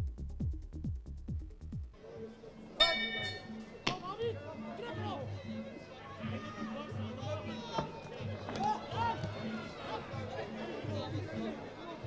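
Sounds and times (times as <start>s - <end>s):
ring bell: 2.8s - 3.7s
crowd shouting: 4.8s - 12.0s.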